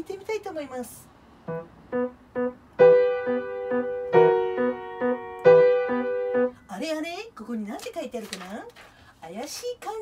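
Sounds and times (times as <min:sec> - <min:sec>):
piano notes and chords: 0:01.4 - 0:06.8.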